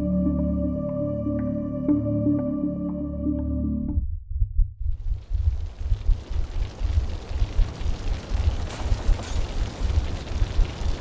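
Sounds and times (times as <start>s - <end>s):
deep pulsing rumble: 3.8s - 11.0s.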